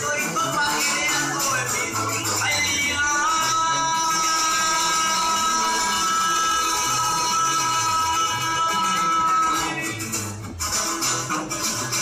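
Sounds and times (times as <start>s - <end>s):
live band music over pa: 0.0s - 12.0s.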